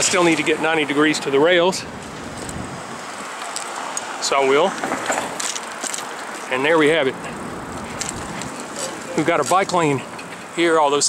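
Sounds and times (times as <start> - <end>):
wind rushing over microphone: 0.0 - 3.5, 6.7 - 8.8
street noise: 0.0 - 11.0.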